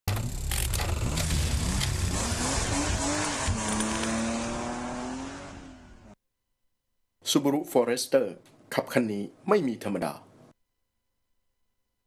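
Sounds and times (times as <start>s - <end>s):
rumbling car sound effects: 0.1s - 6.2s.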